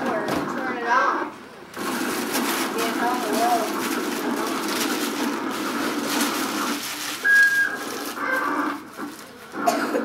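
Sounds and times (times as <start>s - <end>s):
low background murmur: 0.0s - 10.0s
high whistle-like tone: 7.2s - 7.8s.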